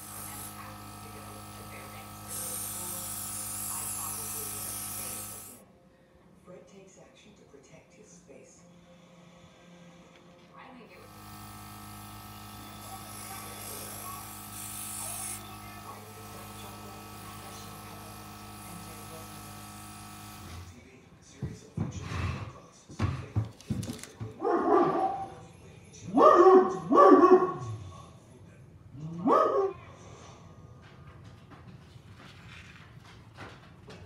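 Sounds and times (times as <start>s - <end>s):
airbrush compressor humming: 0.0s - 5.6s, 10.9s - 20.9s
spray hissing: 0.0s - 5.6s, 12.8s - 20.4s
dog barking: 24.4s - 25.4s, 26.1s - 27.7s, 29.2s - 29.8s.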